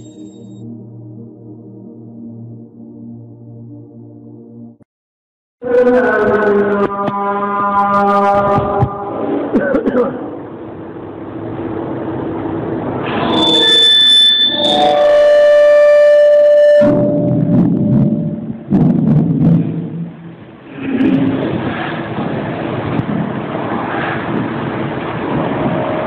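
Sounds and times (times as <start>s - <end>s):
sustained electronic chord: 0.0s - 4.8s, 14.6s - 20.7s
rough noisy sound: 6.0s - 15.7s, 16.8s - 26.0s.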